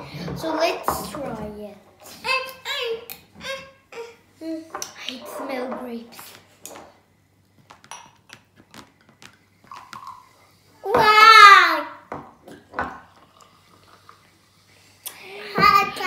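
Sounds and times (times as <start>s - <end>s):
child talking: 0.1s - 6.3s, 10.8s - 12.0s, 15.2s - 16.0s.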